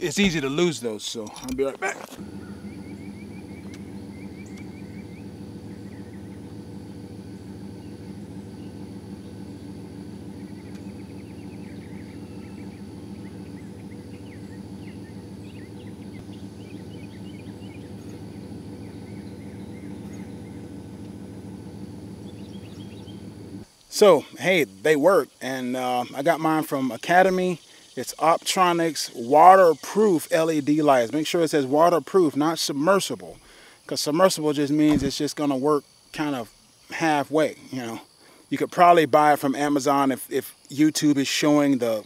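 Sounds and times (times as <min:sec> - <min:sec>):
birds chirping: 0:00.0 - 0:31.6
engine idling: 0:02.0 - 0:23.7
high insect tone: 0:02.2 - 0:42.0.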